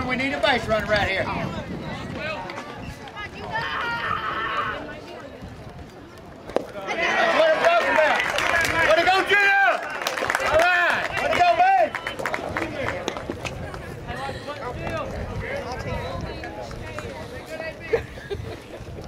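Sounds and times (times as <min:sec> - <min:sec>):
spectators shouting and cheering: 0:00.8 - 0:17.8.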